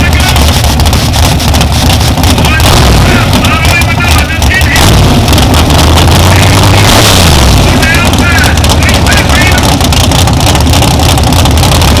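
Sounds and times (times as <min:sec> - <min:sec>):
car engine idling choppily: 0:00.0 - 0:12.0.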